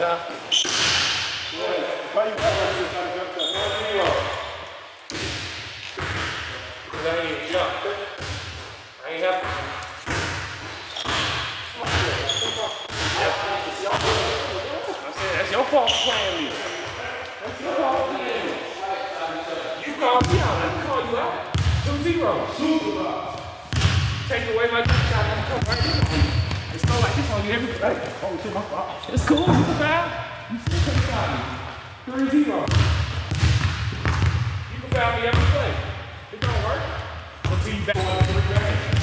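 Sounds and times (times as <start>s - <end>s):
players' voices and chatter: 0.0s - 39.0s
basketball dribbling on hard court: 32.7s - 34.5s.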